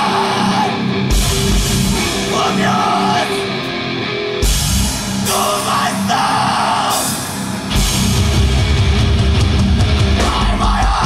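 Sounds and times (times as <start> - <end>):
hardcore band playing live: 0.0 - 11.0.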